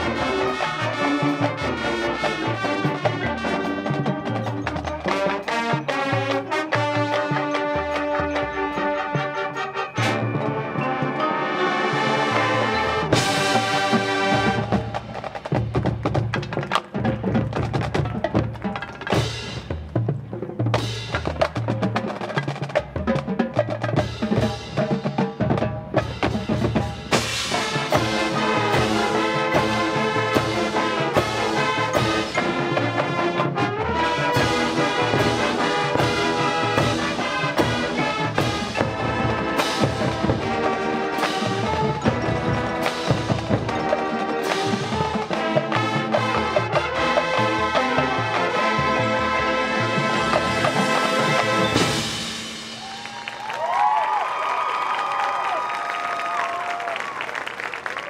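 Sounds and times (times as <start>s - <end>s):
brass band chords: 0.0s - 15.9s, 23.8s - 53.1s
marching band drums: 0.0s - 54.7s.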